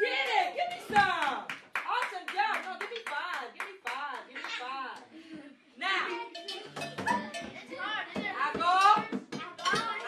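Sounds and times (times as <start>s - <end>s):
hand claps: 0.2s - 5.1s
children calling: 5.8s - 10.0s.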